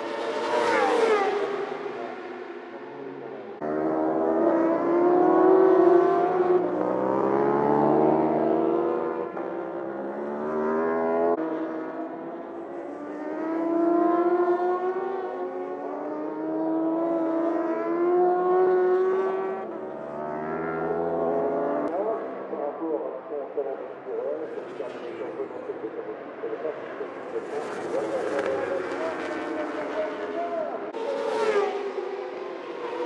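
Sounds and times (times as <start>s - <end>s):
motorbike engines passing at high revs: 0.0s - 22.2s, 26.2s - 33.0s.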